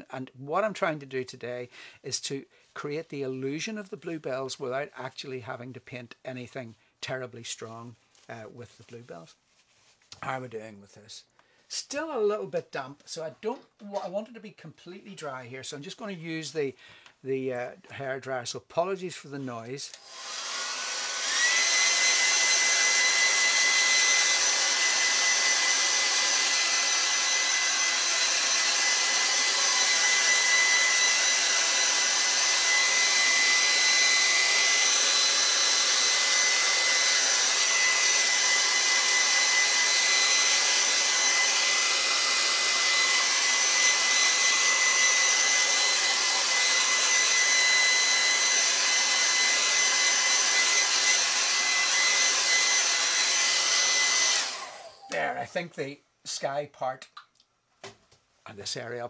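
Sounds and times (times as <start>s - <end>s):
hair dryer running: 19.9s - 55.4s.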